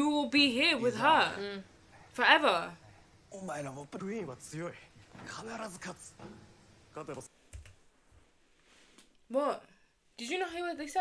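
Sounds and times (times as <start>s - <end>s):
dialogue: 0.0s - 7.4s, 9.0s - 11.0s.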